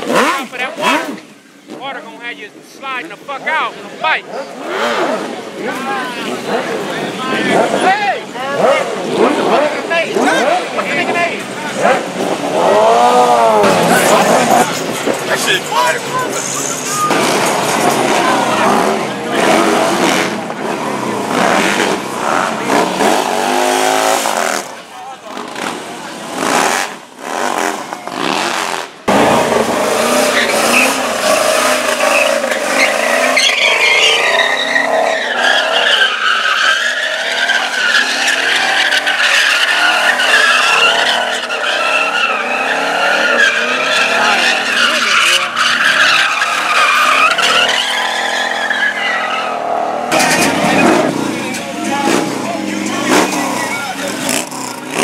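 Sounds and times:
car engine revving: 0:00.0 - 0:55.0
motorcycle engines passing: 0:00.0 - 0:55.0
car tyres squealing: 0:03.0 - 0:55.0.

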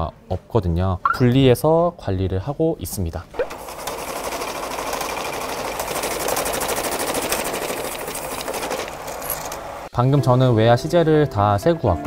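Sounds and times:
banknote counting machine whirring: 0:03.4 - 0:09.9.

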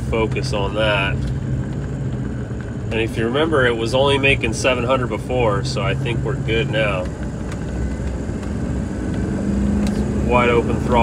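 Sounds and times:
diesel engine accelerating: 0:00.0 - 0:11.0.

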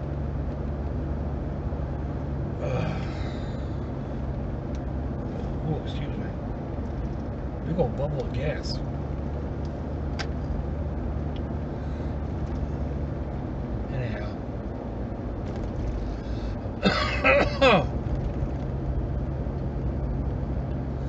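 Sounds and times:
car engine and tyres hum: 0:00.0 - 0:21.0
man making throaty sound: 0:16.8 - 0:17.9.

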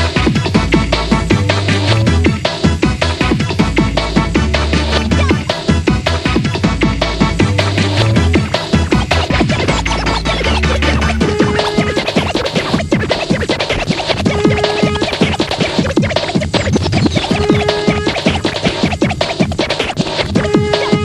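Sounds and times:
rave music with breakbeat drums: 0:00.0 - 0:21.0
high falling sweep: 0:04.1 - 0:21.0
held synth note: 0:09.7 - 0:12.7, 0:14.2 - 0:15.2, 0:17.2 - 0:18.4.

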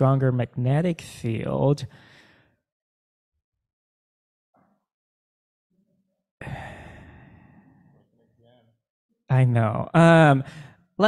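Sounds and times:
loud sigh into microphone: 0:06.4 - 0:07.8.

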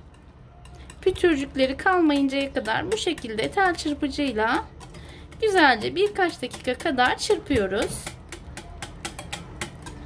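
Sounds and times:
whisk clicking against glass bowl: 0:00.0 - 0:10.0.

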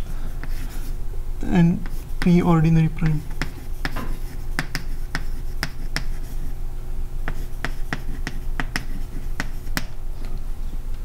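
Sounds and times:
chalk tapping on blackboard: 0:00.4 - 0:00.8, 0:01.8 - 0:02.4, 0:03.0 - 0:06.4, 0:07.2 - 0:09.9.

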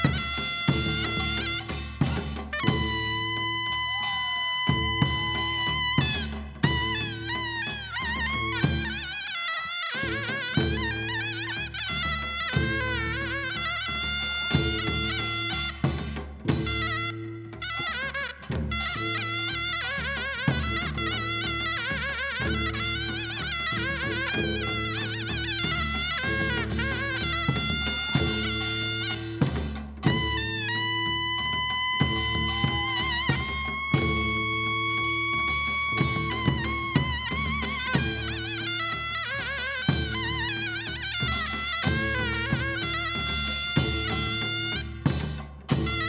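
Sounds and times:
double-reed shawm melody: 0:00.0 - 0:46.0
drums: 0:00.0 - 0:46.0
drum strikes: 0:25.7 - 0:34.8.

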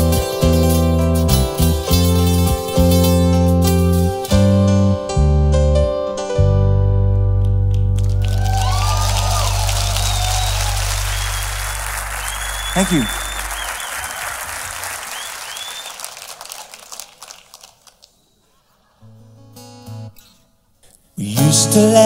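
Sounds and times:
audience applauding and cheering: 0:07.7 - 0:18.2
whistles: 0:08.6 - 0:16.3.

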